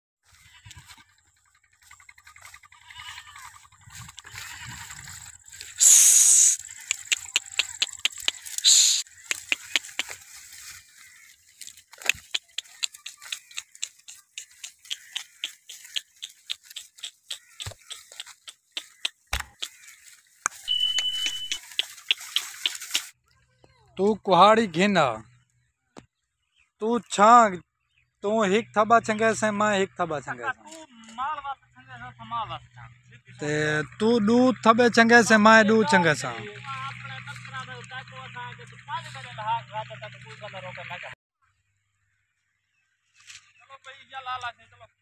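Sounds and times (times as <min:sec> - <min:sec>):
goats bleating: 0:00.3 - 0:01.1, 0:02.4 - 0:10.1, 0:12.1 - 0:20.1
short dry crunches: 0:01.8 - 0:23.2
high electronic beep: 0:20.7 - 0:21.7.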